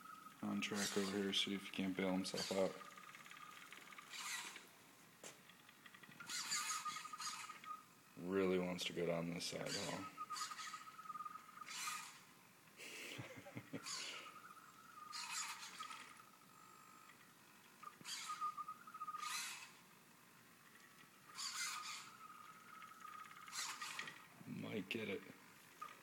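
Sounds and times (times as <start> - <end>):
robot motors whining: 0.0 - 4.7, 5.5 - 12.4, 13.6 - 26.0
short motor buzzing bursts: 0.4 - 4.8, 5.5 - 12.4, 13.8 - 24.4.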